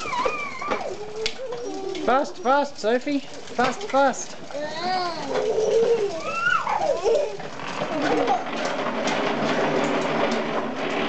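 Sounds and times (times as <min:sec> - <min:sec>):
plastic tricycles rolling on floor: 0:00.0 - 0:11.0.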